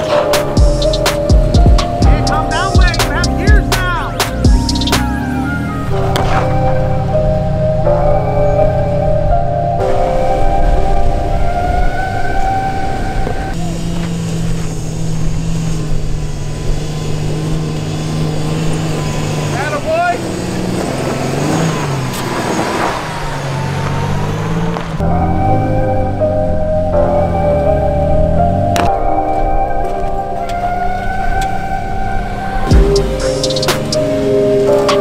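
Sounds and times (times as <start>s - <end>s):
background music: 0.0s - 13.7s, 25.0s - 35.0s
pickup truck engines crawling: 0.0s - 35.0s.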